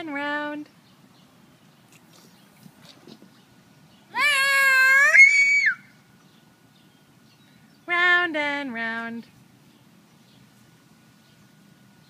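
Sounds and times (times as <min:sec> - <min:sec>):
toddler squealing: 0:04.1 - 0:05.9.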